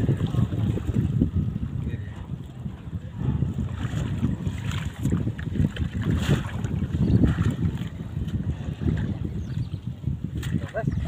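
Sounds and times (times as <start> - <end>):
water sloshing and splashing: 0.0 - 11.0
wind buffeting microphone: 0.0 - 11.0.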